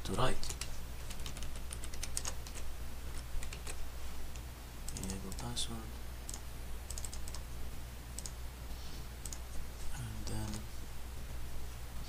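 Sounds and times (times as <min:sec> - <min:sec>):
low steady hum: 0:00.0 - 0:12.0
computer keys and mouse clicks: 0:00.4 - 0:03.8, 0:04.9 - 0:05.5, 0:06.3 - 0:07.4, 0:08.2 - 0:08.4, 0:09.2 - 0:09.4.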